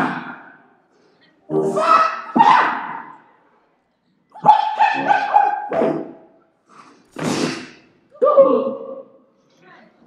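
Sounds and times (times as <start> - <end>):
dog yelping and barking: 4.4 - 6.1.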